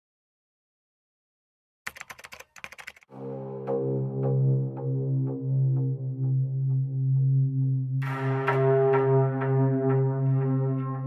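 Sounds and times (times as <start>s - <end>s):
rapid keyboard typing: 1.9s - 3.1s.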